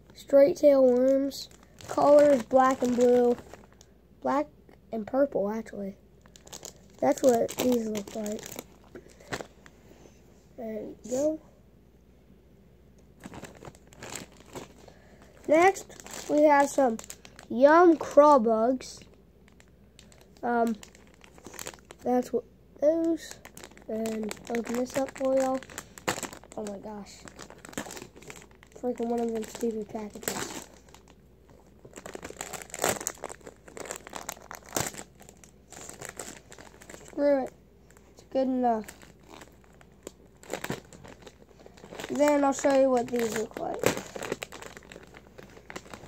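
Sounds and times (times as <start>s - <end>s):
plastic packaging crinkling: 0.1s - 3.9s, 6.2s - 9.8s, 13.2s - 18.2s, 18.8s - 22.3s, 22.9s - 46.0s.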